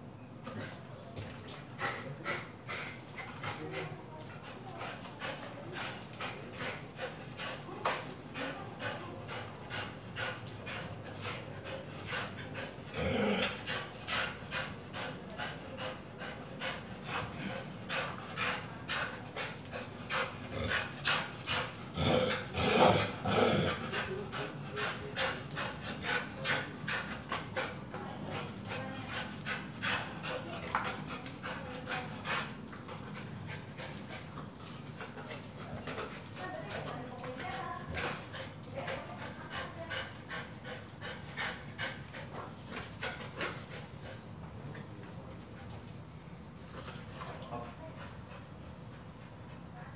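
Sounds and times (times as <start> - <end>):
dog panting: 0.4 - 49.9.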